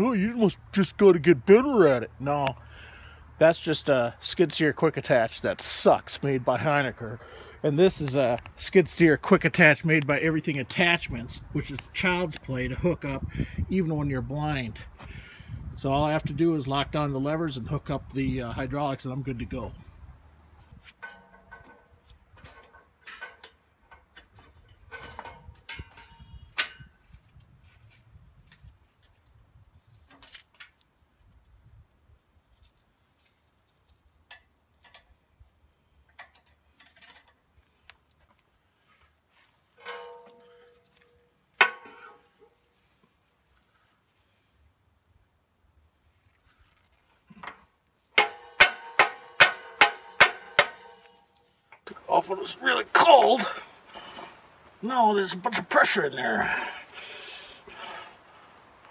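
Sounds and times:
metallic clicks of couplers: 0:36.0 - 0:38.2, 0:47.4 - 0:52.1
ringing metal knocks: 0:39.8 - 0:42.3, 0:48.2 - 0:51.2.

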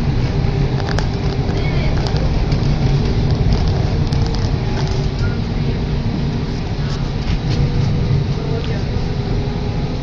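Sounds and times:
tram rumbling: 0:00.0 - 0:10.0.

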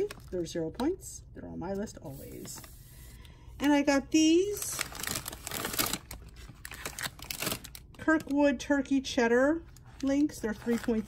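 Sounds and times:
plastic packaging crinkling: 0:00.0 - 0:00.8, 0:04.4 - 0:08.4.

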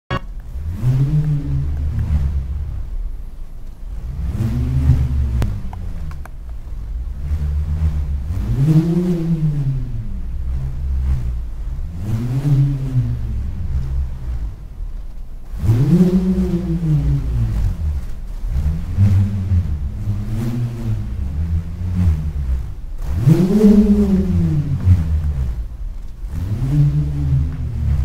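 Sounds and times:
steady low rumble: 0:00.1 - 0:28.0.

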